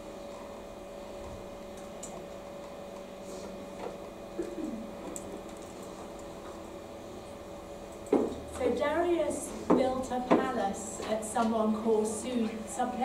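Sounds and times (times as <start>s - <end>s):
steady electrical hum: 0.0s - 13.0s.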